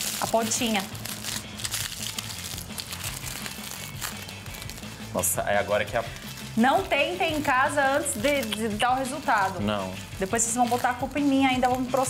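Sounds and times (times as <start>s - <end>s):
aluminium foil crinkling: 0.0s - 12.0s
background music: 0.0s - 12.0s.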